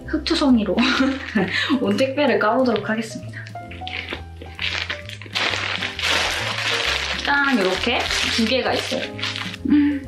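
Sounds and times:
plastic bag crinkling: 0:03.4 - 0:09.6
scissors cutting plastic: 0:03.6 - 0:09.6.

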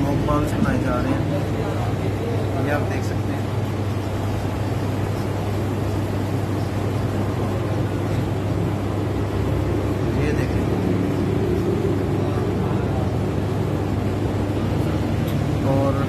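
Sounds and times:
slush machines humming: 0:00.0 - 0:16.0
faint voices: 0:10.1 - 0:16.0.

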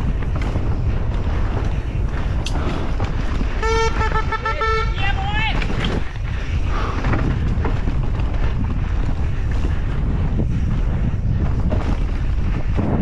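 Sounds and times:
bike rattling: 0:00.0 - 0:13.0
wind rush on microphone: 0:00.0 - 0:13.0.

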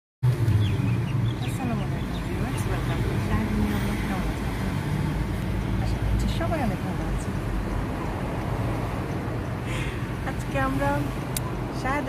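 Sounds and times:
car engine rumble: 0:00.2 - 0:12.0
road noise: 0:00.2 - 0:12.0.

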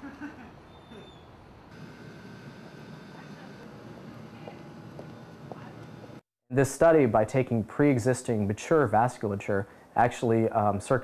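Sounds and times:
room and equipment hum: 0:01.7 - 0:10.8.

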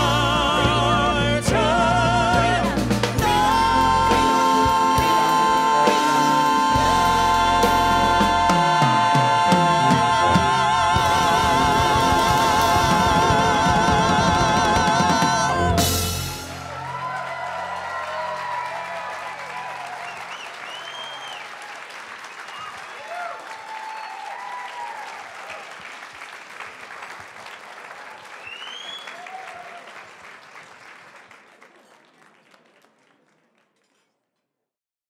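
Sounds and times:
band low notes: 0:00.0 - 0:17.1
whoops: 0:16.3 - 0:21.8, 0:22.5 - 0:25.8, 0:28.4 - 0:30.0
audience clapping: 0:16.6 - 0:34.2.

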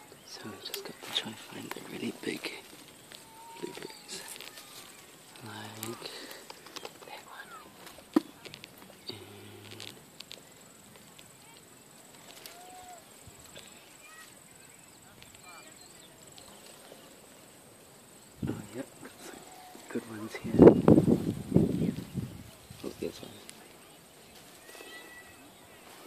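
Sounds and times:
rustling of branches: 0:00.0 - 0:26.0
faint high chirps: 0:02.9 - 0:06.1, 0:21.6 - 0:26.0.

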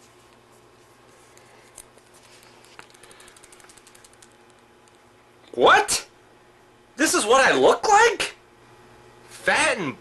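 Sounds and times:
photo print flapping when shaken: 0:02.0 - 0:04.5.

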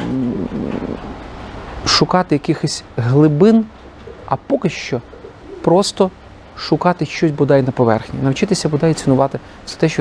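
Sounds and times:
man speaking: 0:01.8 - 0:10.0.

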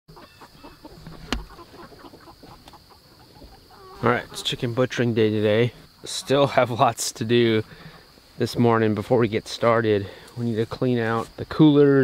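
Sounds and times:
chickens clucking softly: 0:00.1 - 0:08.2.

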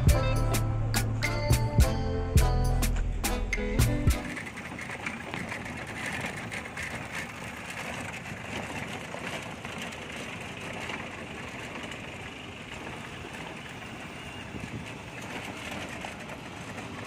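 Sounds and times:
street ambience: 0:00.0 - 0:17.0
trishaw rolling and rattling: 0:03.3 - 0:17.0.

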